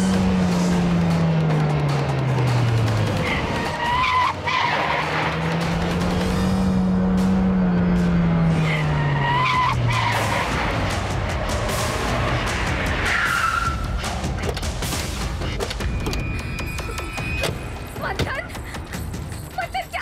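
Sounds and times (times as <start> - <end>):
car engine revving hard: 0.0 - 13.1
background music: 0.0 - 20.0
tyre squeal: 13.1 - 14.1.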